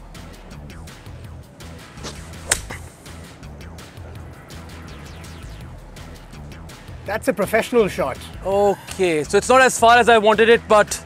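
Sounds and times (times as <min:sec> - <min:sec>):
background music: 0:00.0 - 0:11.0
golf club striking ball: 0:01.8 - 0:03.0.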